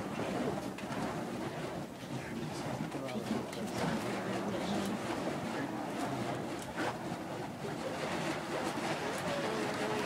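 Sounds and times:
faint voices: 2.0 - 10.0.

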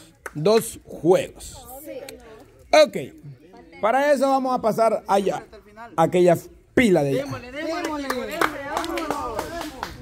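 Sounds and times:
hand claps: 0.2 - 0.7, 7.8 - 10.0.

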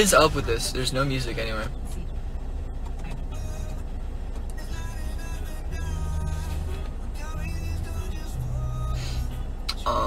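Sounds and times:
faint car radio music: 0.0 - 10.0
low rumble inside car: 0.0 - 10.0.

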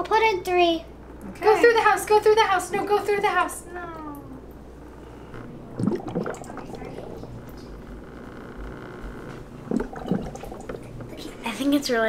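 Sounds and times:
aquarium air bubbler bubbling: 5.2 - 8.8, 9.5 - 11.2.

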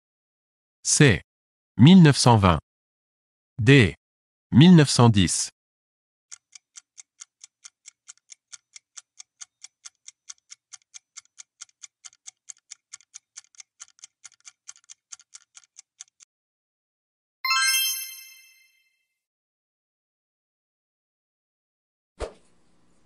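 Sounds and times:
clock ticking: 6.3 - 16.3
bright chime: 17.5 - 19.0.

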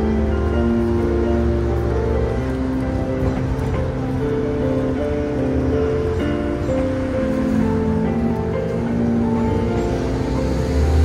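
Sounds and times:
piano melody over chords: 0.0 - 11.0.

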